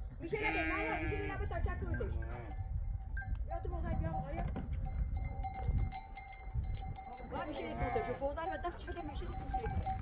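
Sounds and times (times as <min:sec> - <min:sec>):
sheep bleating: 0:00.3 - 0:01.4.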